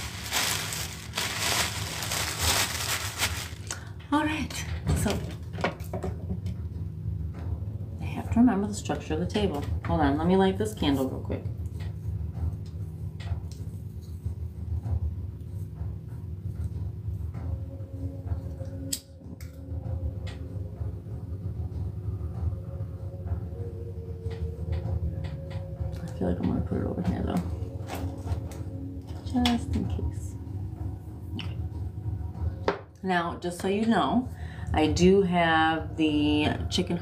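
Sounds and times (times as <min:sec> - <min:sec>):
steady low hum: 0:00.0 - 0:05.6.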